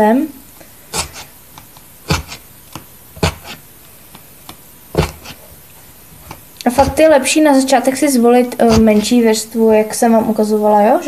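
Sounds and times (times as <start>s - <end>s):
felting needle jabbing foam: 0.9s - 7.2s, 8.5s - 9.2s.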